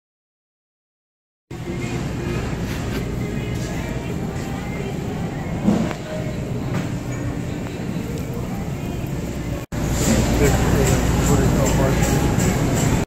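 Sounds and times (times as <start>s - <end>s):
indistinct voices of shoppers: 1.5s - 13.0s.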